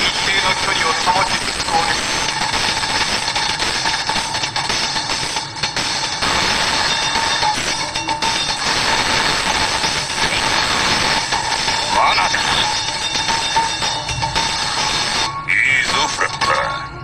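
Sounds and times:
background music: 0.0s - 17.0s
loud steady rushing noise: 0.0s - 17.0s.

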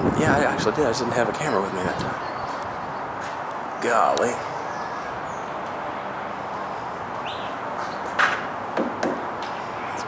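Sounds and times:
steady background noise: 0.0s - 10.0s
sharp knocks: 8.2s - 9.5s.

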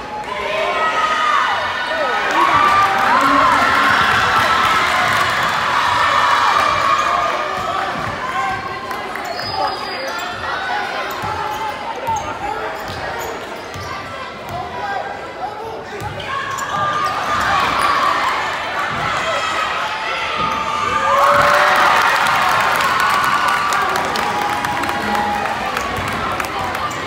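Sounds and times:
crowd chattering and shouting: 0.0s - 27.0s.

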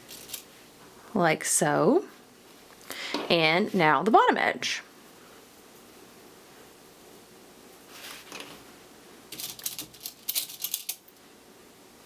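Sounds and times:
fabric rustling: 7.8s - 8.6s.

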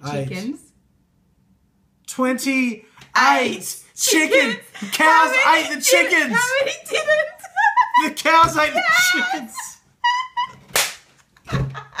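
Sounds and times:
high-pitched squealing laughter: 7.1s - 10.7s
sharp slap: 10.7s - 11.2s.

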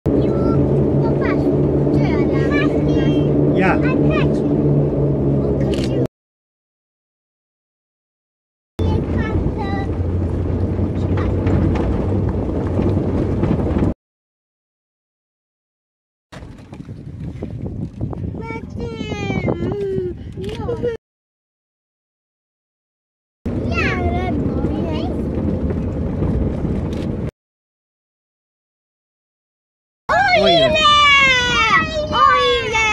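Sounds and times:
children's voices: 0.1s - 4.6s, 8.8s - 10.0s, 18.4s - 21.0s, 23.6s - 25.3s, 30.1s - 32.9s
vehicle engine drone from inside: 0.1s - 6.1s, 8.8s - 14.0s, 23.5s - 27.3s, 30.1s - 32.9s
child calling out: 30.1s - 32.9s.

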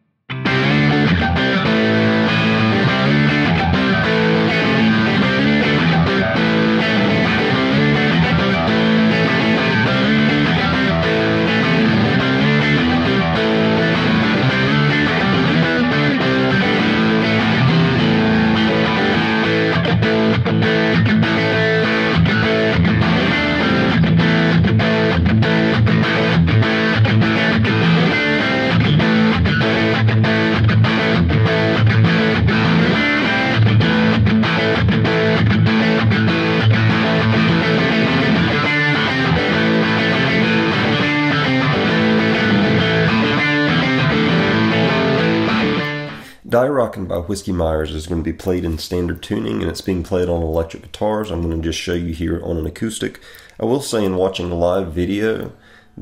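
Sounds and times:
electric guitar strummed: 0.0s - 46.4s.

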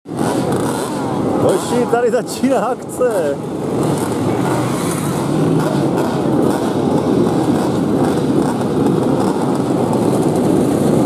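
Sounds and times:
two-stroke motorcycles running: 0.1s - 11.0s
people talking: 1.4s - 3.4s.

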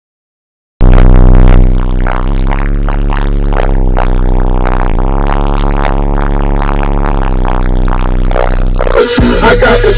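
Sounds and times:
loud bass-heavy car audio music: 0.8s - 9.9s.

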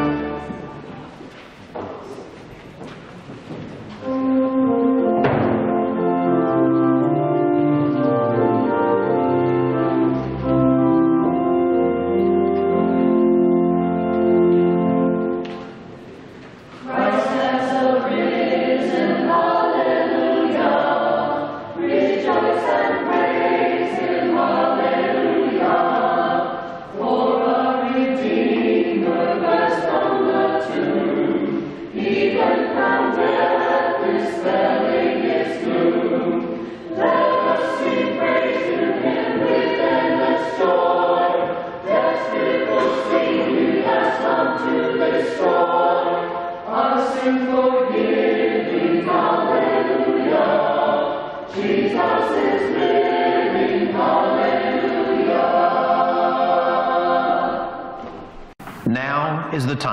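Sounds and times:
church choir singing: 0.0s - 2.4s, 4.0s - 58.6s.

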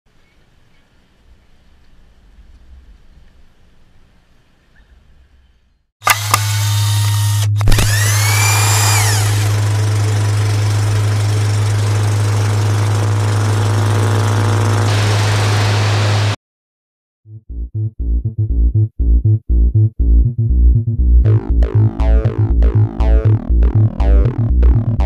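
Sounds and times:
faint outdoor ambience: 0.1s - 5.9s
rising and falling tone: 7.4s - 10.3s, 17.6s - 25.0s.

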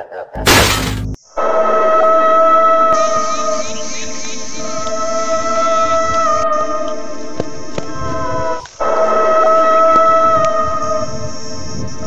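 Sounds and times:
loud noisy crash: 0.4s - 1.2s.

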